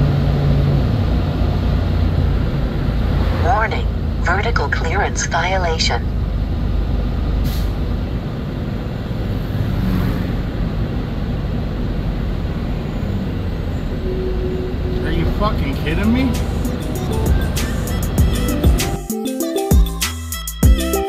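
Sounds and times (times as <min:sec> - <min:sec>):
diesel truck engine running: 0:00.0 - 0:09.5, 0:10.4 - 0:19.1
road rumble: 0:00.0 - 0:19.1
brief air hisses: 0:07.4 - 0:07.8.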